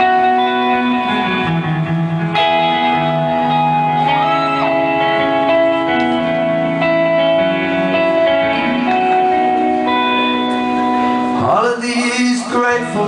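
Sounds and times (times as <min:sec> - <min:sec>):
electric guitar ringing chords: 0:00.0 - 0:13.0
live band playing slow instrumental: 0:00.0 - 0:13.0.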